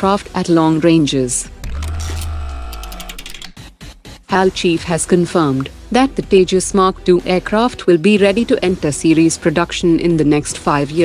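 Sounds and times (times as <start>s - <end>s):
rapid run of ticks: 1.7s - 3.5s.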